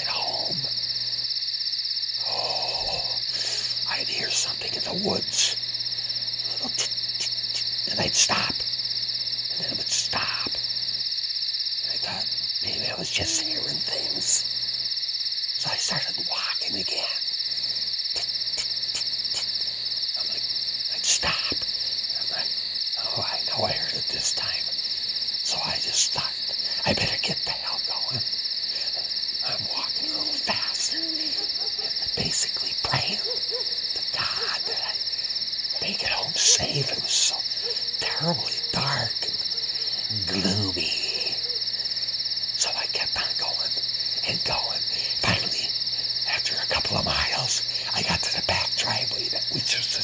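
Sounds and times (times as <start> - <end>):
crickets chirping: 0.0 - 50.0.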